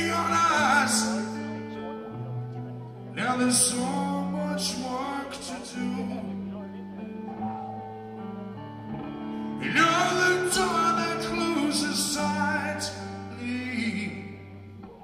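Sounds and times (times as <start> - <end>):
ringing guitar chords: 0.0 - 15.0.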